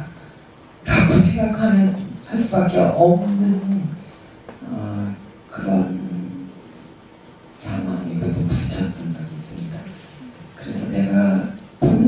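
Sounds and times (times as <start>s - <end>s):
voice through a microphone and pa: 0.0s - 6.7s, 7.6s - 12.0s.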